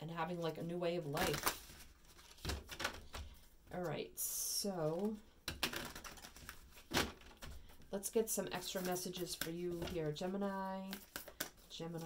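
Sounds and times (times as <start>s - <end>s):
cards being shuffled: 1.2s - 3.4s, 4.9s - 7.9s, 8.6s - 10.2s, 10.8s - 12.0s.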